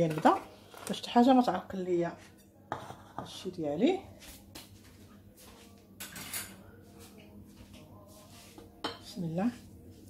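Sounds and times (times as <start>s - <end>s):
dishes and utensils clinking: 2.3s - 3.5s, 6.0s - 7.3s, 8.6s - 9.2s.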